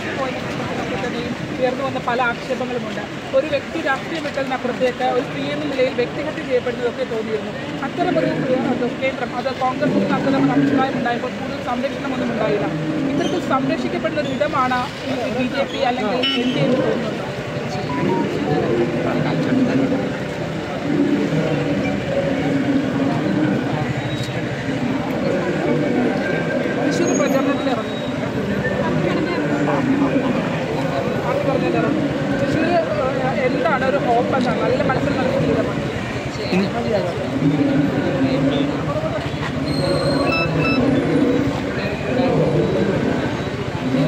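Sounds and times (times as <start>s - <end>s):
traffic noise: 0.0s - 44.0s
short high beeps: 17.8s - 18.7s, 39.8s - 40.9s.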